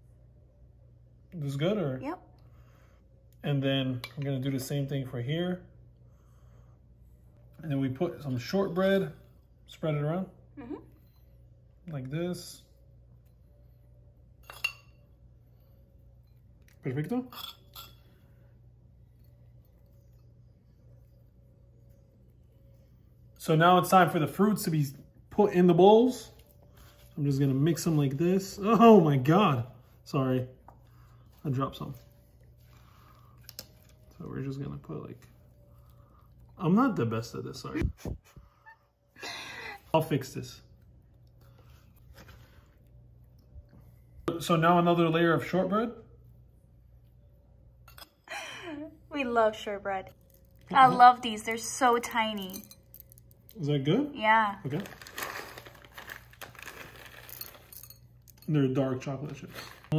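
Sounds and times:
metal spoon clinking against dish: 17.3s - 18.1s.

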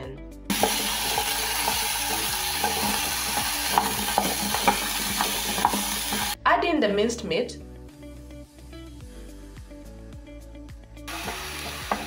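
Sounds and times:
potatoes sizzling in hot oil: 0.5s - 6.4s, 11.1s - 12.0s
wooden spoon scraping a pan: 0.6s - 6.4s, 11.1s - 12.0s.

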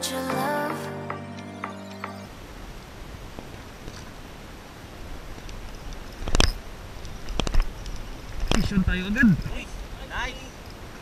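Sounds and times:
wind: 2.3s - 11.0s.

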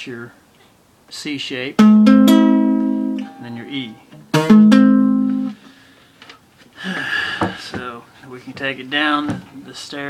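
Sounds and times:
acoustic guitar chord strum: 1.8s - 5.7s.

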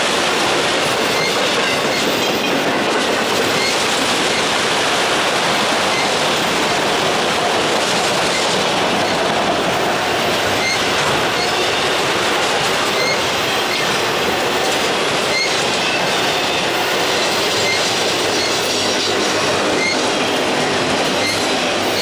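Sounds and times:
steel wheels rushing on rail: 0.0s - 22.0s
high wheel squeals: 1.1s - 2.5s, 3.5s - 4.4s, 10.5s - 11.8s, 12.8s - 14.0s, 15.2s - 19.1s, 19.7s - 22.0s.

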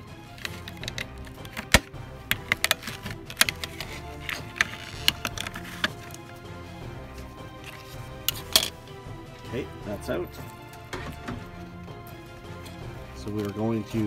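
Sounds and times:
background music: 0.0s - 14.0s
plastic clicks and snaps: 0.4s - 6.2s.

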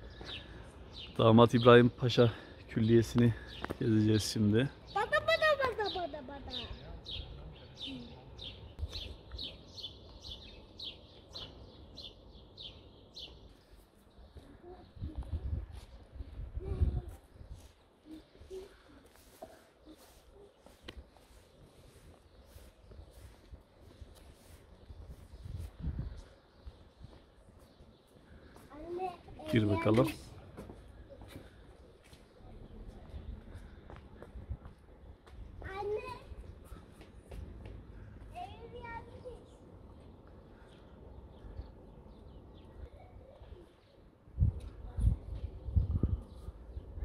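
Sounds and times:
songbird chirping: 0.0s - 44.8s.

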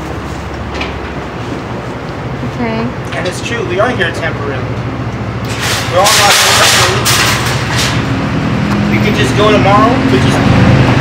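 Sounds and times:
engine humming: 0.0s - 11.0s
loud rush of noise: 3.5s - 11.0s.

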